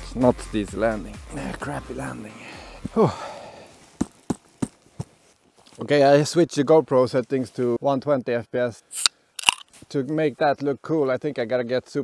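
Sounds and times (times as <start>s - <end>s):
man exhaling whew: 2.6s - 3.7s.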